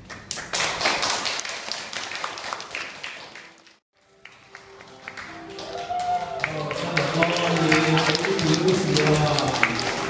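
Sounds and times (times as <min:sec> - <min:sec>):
people applauding: 0:00.0 - 0:10.0.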